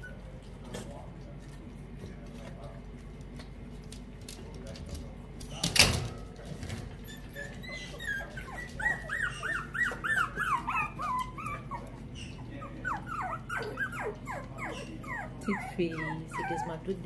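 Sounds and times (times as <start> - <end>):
puppies whimpering: 0.0 - 0.5, 6.8 - 17.0.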